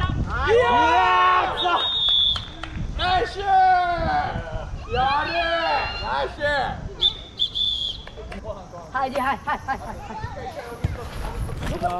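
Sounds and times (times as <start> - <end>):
referee's whistle blasts: 1.6 - 2.5, 7.0 - 8.1.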